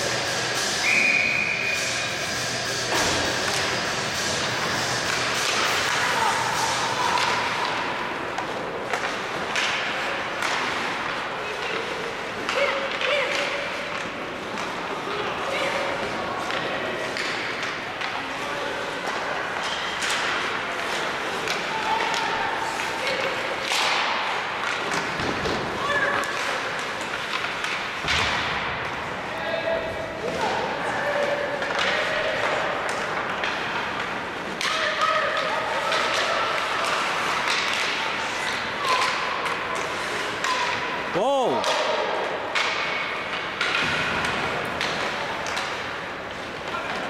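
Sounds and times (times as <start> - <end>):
puck and sticks hitting boards: 0.0 - 29.2, 29.8 - 47.0.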